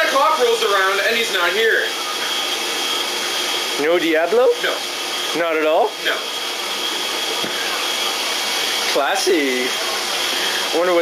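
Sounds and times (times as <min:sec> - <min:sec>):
whirring machine: 0:00.0 - 0:11.0.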